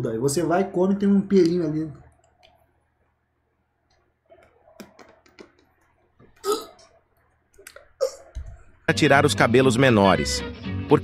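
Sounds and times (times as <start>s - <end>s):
man making throaty sound of disgust: 6.4s - 6.8s
tongue and lip clicks: 6.4s - 8.5s.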